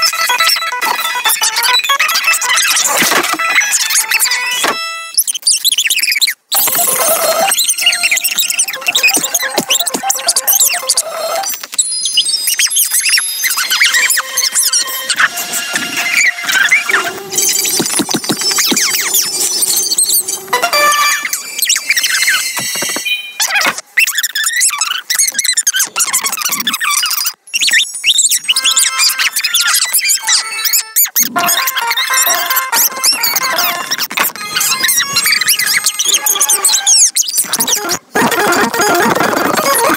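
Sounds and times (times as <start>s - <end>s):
high-pitched squeaky chatter: 0.0s - 39.9s
steady high tones: 6.6s - 23.6s.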